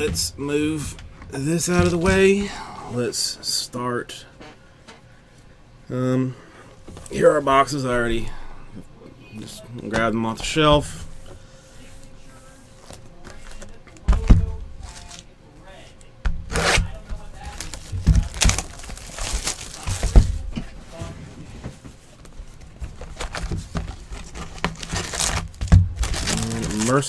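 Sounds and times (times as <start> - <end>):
shrink wrap crinkling: 14.7 - 15.3, 16.5 - 20.6, 22.2 - 27.0.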